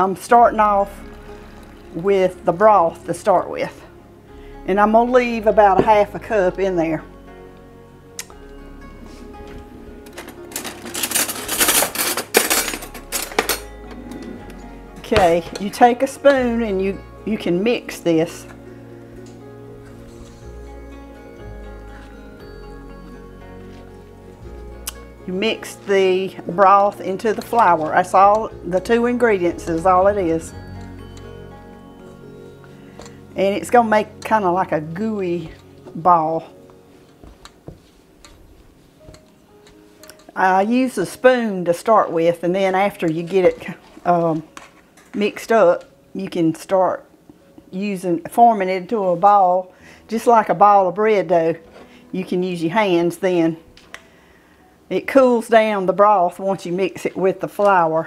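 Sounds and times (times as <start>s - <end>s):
silverware clattering in a drawer: 10.2s - 14.3s.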